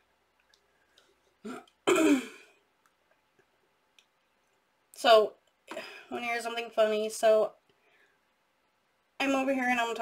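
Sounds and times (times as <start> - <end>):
woman clearing her throat: 1.4 - 2.6.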